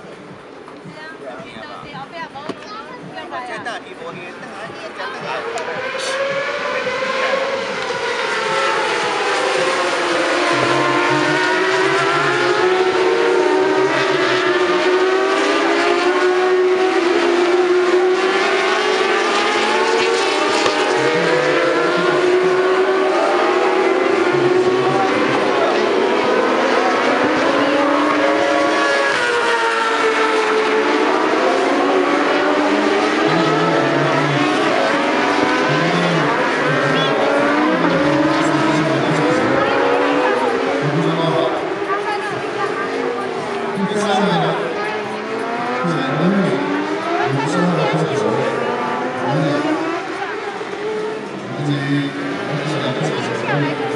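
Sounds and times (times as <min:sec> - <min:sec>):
racing motorcycle engines: 0:00.0 - 0:53.9.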